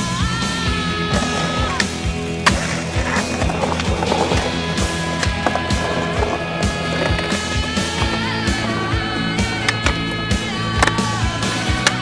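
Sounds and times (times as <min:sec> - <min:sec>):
music with steady beat: 0:00.0 - 0:12.0
skateboard wheels rolling on concrete: 0:00.0 - 0:12.0
skateboard clacking: 0:00.2 - 0:12.0.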